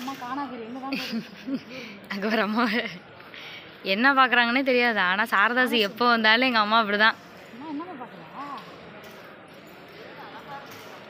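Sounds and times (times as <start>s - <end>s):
shop ambience: 0.0s - 11.0s.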